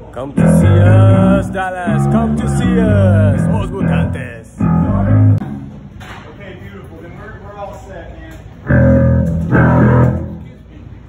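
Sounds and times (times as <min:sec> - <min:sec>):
electric guitar and bass chords: 0:00.4 - 0:05.9, 0:08.6 - 0:10.6.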